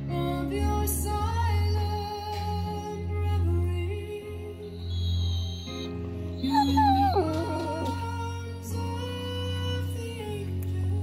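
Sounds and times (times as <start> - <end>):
background music: 0.0 - 11.0
dog whining: 4.8 - 8.1.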